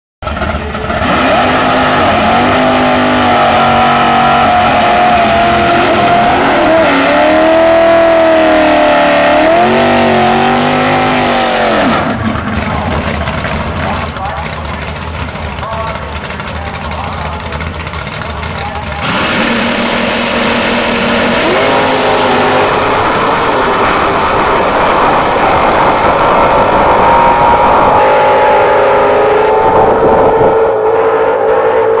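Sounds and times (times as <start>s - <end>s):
race car engines revving: 0.2s - 32.0s.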